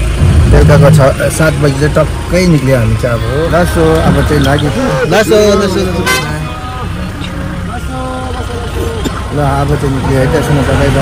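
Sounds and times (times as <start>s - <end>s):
van engine rumble: 0.0s - 11.0s
voices calling out: 0.0s - 11.0s.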